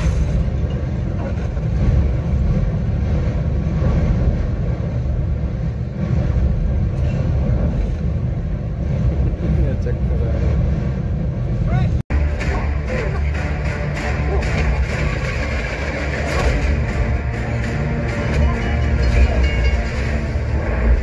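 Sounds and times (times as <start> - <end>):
train rumbling in motion: 0.0 - 21.0
voices: 11.6 - 20.3.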